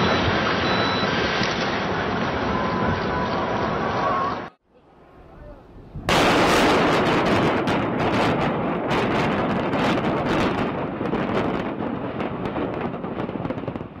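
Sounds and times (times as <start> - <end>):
rumble of collapsing buildings: 0.0 - 4.5, 5.9 - 14.0
loud explosive blast: 6.0 - 14.0.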